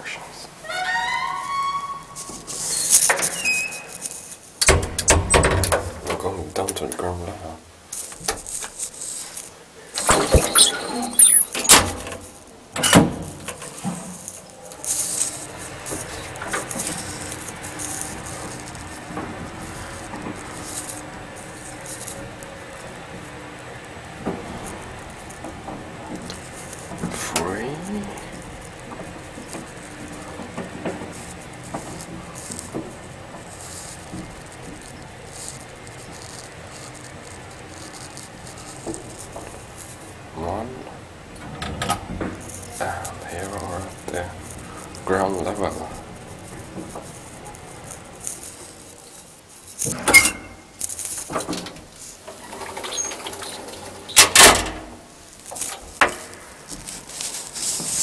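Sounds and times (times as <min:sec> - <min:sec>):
short high squeal: 0:00.6 - 0:04.2, 0:10.2 - 0:11.6.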